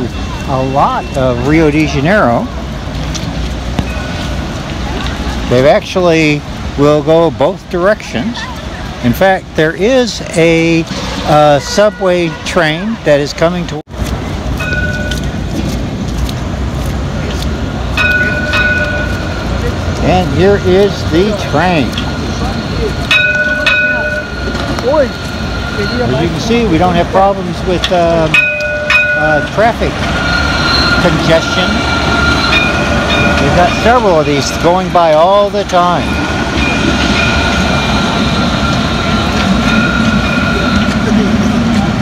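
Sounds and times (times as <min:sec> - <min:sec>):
tram warning bell ringing: 0:00.0 - 0:13.0, 0:14.4 - 0:15.6, 0:17.6 - 0:42.0
distant traffic rumble: 0:00.0 - 0:42.0.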